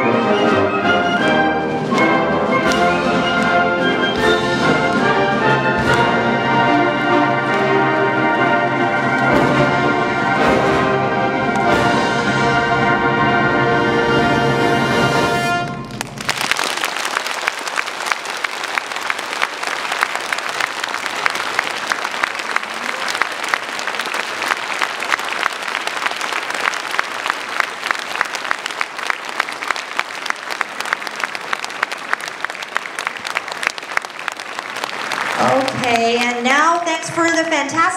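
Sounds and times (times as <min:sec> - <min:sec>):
audience applauding: 0:00.0 - 0:11.9, 0:15.5 - 0:36.4
wind ensemble chord: 0:00.0 - 0:15.9.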